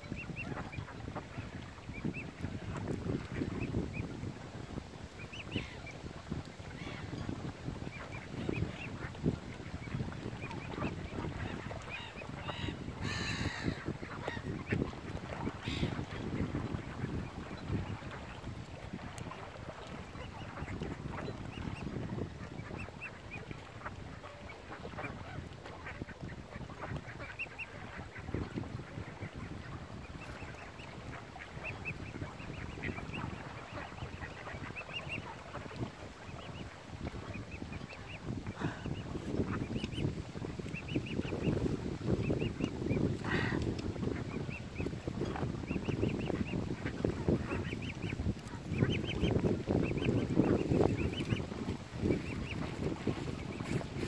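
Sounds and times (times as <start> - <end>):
rumble of wind and water: 0.0 - 54.0
waterfowl calling: 7.9 - 21.9, 22.5 - 53.9.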